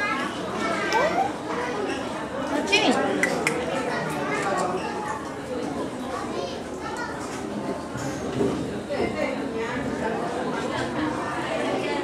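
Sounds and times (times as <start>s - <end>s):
indistinct voices chattering: 0.4s - 5.2s.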